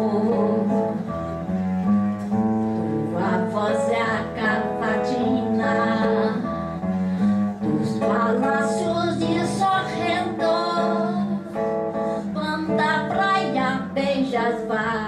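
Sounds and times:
woman singing: 0:00.0 - 0:01.2, 0:03.0 - 0:06.7, 0:07.6 - 0:15.0
strummed acoustic guitar: 0:00.0 - 0:15.0.

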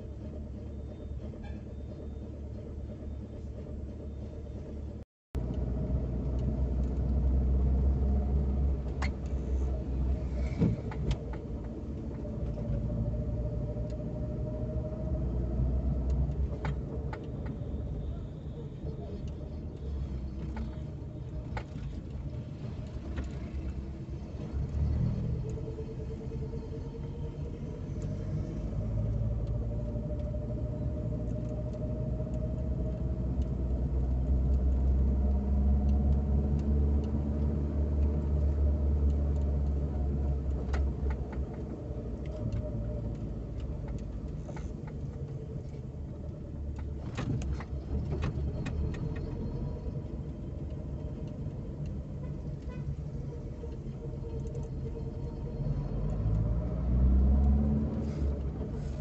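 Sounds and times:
car engine from inside cabin: 0:00.0 - 0:59.0
faint clicks: 0:25.4 - 0:59.0.

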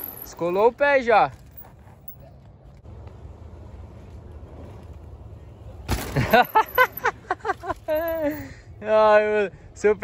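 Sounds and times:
bike tyres rolling on dirt: 0:00.0 - 0:08.1.

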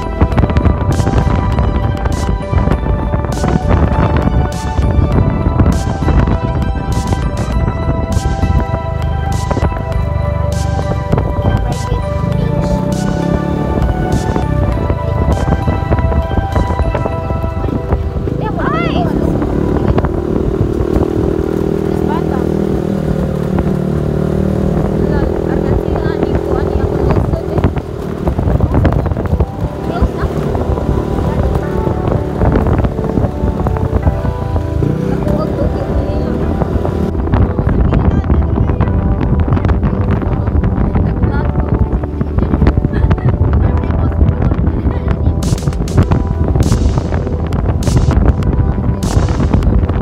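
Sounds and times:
motor scooter running: 0:00.0 - 0:50.0
wind buffeting microphone: 0:00.0 - 0:50.0.

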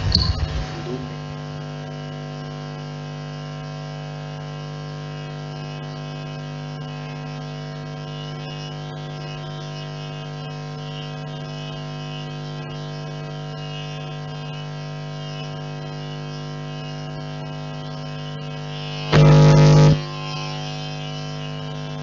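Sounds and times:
mains hum through speakers: 0:00.0 - 0:22.0.

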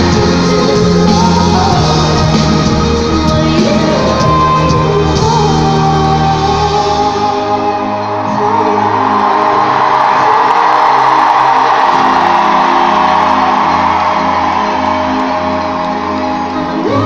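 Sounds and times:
crowd cheering and shouting: 0:00.0 - 0:17.0
pop song over sound system: 0:00.0 - 0:17.0.

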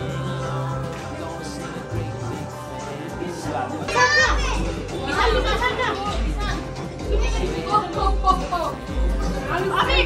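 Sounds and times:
household chatter: 0:00.0 - 0:10.0
music with bass beat: 0:00.0 - 0:10.0.

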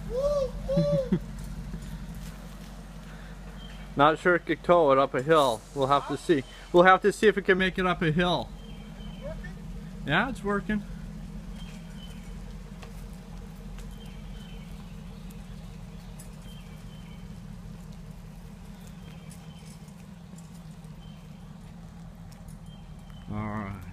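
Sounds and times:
engine running low hum: 0:00.0 - 0:23.9
light clicks and clatter: 0:11.6 - 0:23.9.

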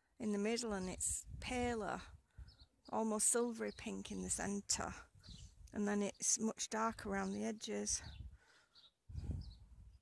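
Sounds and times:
distant bird chirps: 0:02.3 - 0:06.4, 0:07.1 - 0:09.6.

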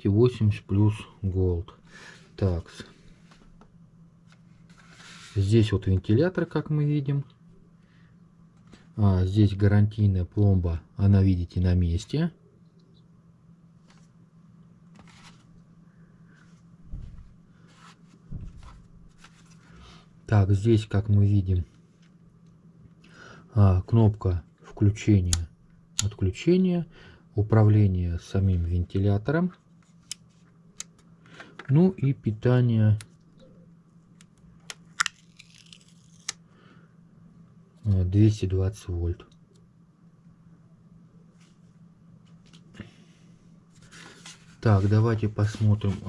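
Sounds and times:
faint steady low hum: 0:00.0 - 0:46.0.

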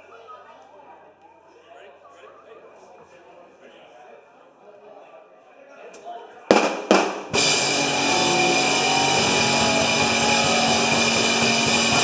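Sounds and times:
drums: 0:06.5 - 0:12.0
loud hits: 0:06.5 - 0:12.0
bass guitar: 0:07.4 - 0:12.0
electric guitars: 0:07.4 - 0:12.0.

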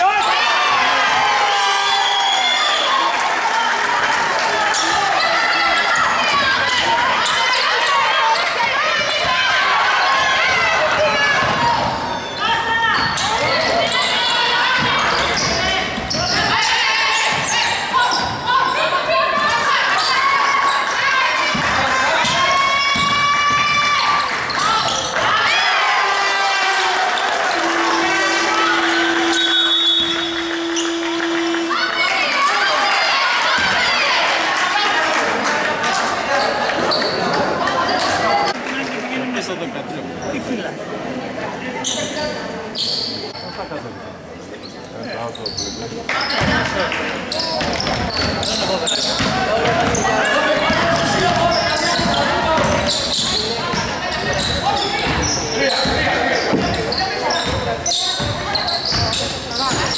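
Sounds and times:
players shouting: 0:00.0 - 0:38.6
steady low tone: 0:27.6 - 0:32.0.

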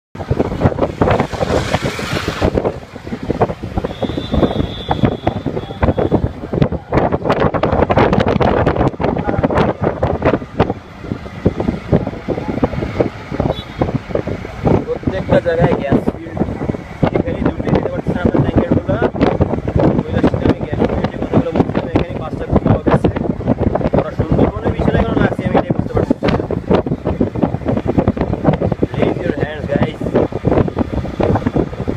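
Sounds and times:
moving vehicle rumble: 0:00.1 - 0:31.9
wind buffeting microphone: 0:00.2 - 0:31.9
people talking: 0:09.0 - 0:10.0, 0:11.9 - 0:12.8, 0:14.8 - 0:19.1, 0:20.0 - 0:23.2, 0:24.0 - 0:26.4, 0:28.9 - 0:30.1.

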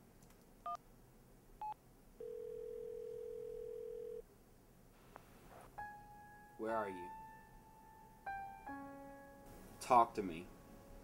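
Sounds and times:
phone ringing tone: 0:02.2 - 0:04.2.

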